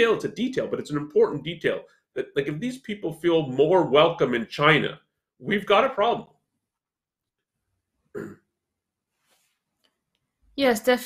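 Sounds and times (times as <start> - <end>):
person clearing throat: 8.2 - 8.5.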